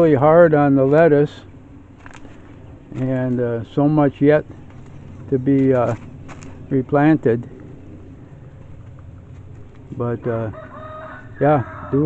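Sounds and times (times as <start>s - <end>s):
low hum: 0.0s - 11.9s.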